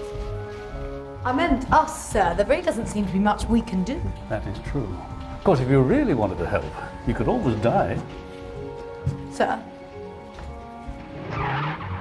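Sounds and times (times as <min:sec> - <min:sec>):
background music with sustained notes: 0:00.0 - 0:12.0
car driving past: 0:11.0 - 0:12.0.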